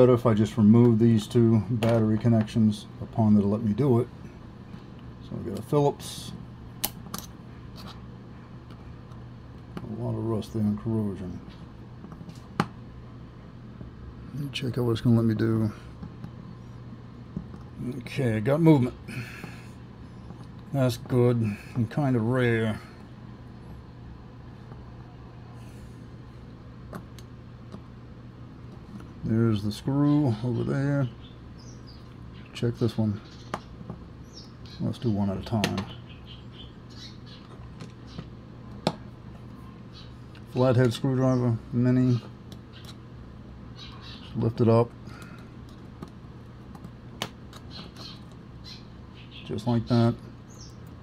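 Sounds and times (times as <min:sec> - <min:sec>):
low background hum: 0:00.0 - 0:51.0.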